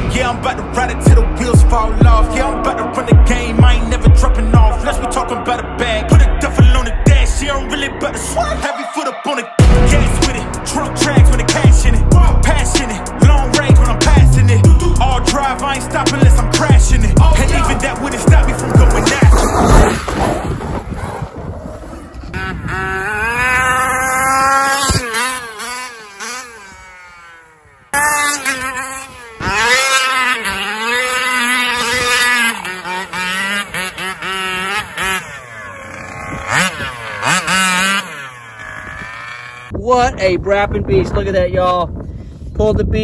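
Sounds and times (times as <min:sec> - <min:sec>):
background music: 0:00.0 - 0:19.8
rc car gas engine revving: 0:21.8 - 0:39.7.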